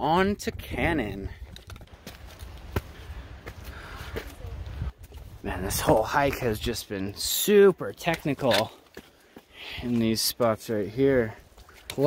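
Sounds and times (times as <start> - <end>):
wind rumble on microphone: 0.2 - 6.6
boots and poles tapping on rock: 1.1 - 5.3, 8.0 - 10.1.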